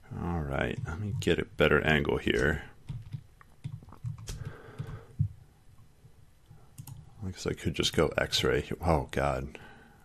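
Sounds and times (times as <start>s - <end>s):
computer mouse and keyboard clicks: 2.3s - 5.3s, 6.7s - 7.1s.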